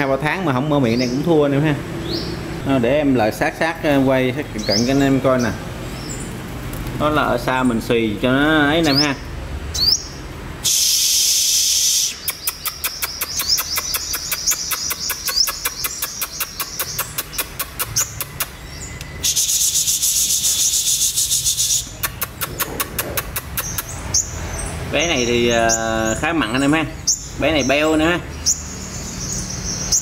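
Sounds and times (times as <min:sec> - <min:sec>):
bird chattering song: 0:00.0 - 0:30.0.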